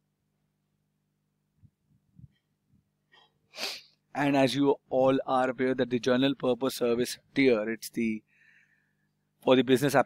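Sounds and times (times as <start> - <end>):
man's sharp breath in: 3.5 - 4.0, 8.3 - 9.0
man speaking: 4.2 - 8.2, 9.4 - 10.0.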